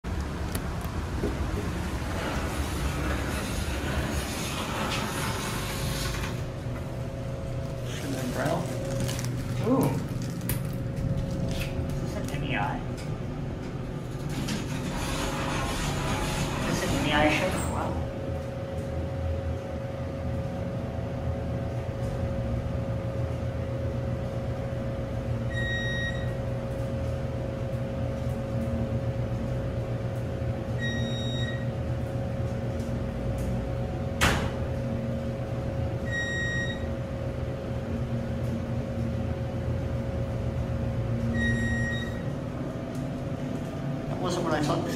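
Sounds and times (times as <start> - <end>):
elevator hum: 0.1 - 44.9
elevator doors sliding shut: 0.7 - 6.8, 13.7 - 18.0.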